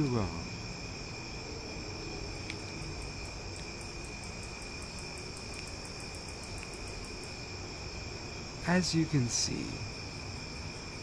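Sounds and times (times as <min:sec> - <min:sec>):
crickets chirping: 0:00.0 - 0:11.0
faint snaps: 0:02.4 - 0:02.8, 0:06.5 - 0:06.8.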